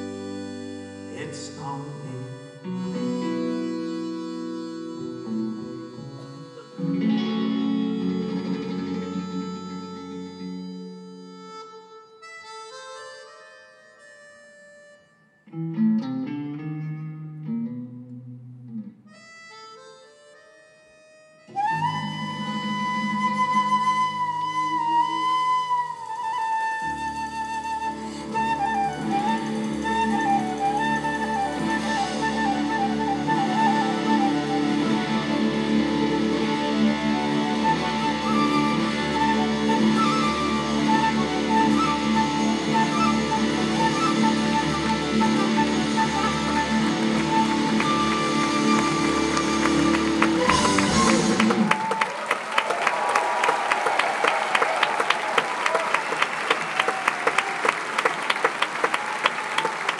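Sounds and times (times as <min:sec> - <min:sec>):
live rock band: 0:00.0 - 0:11.3, 0:21.6 - 0:52.3
flute melody: 0:00.0 - 0:16.1, 0:18.8 - 0:53.4.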